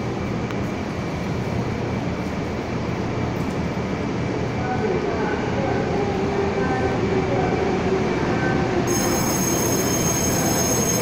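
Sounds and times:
train approaching in tunnel: 0:00.0 - 0:11.0.

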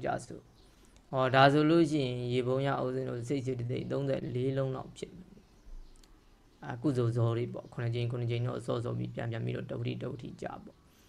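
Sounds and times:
man speaking: 0:00.0 - 0:00.5, 0:01.1 - 0:05.4, 0:06.6 - 0:10.8.

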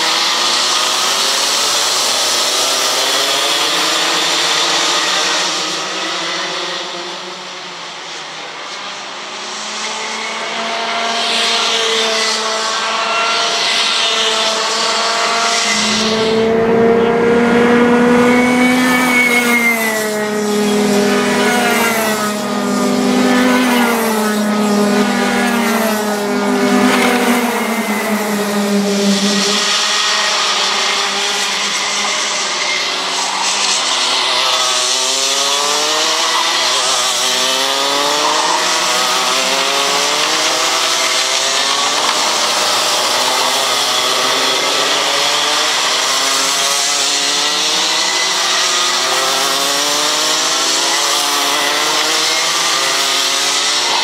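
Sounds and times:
kart engine revving: 0:00.0 - 0:54.0
racing karts buzzing: 0:00.0 - 0:54.0.

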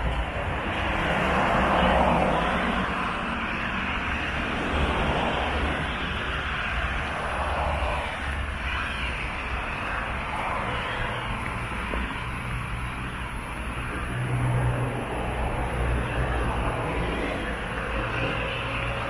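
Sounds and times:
road traffic passing: 0:00.0 - 0:19.0.

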